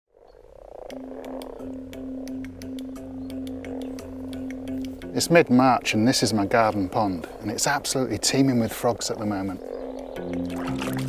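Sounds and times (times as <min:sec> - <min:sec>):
frogs croaking softly: 0:00.1 - 0:11.0.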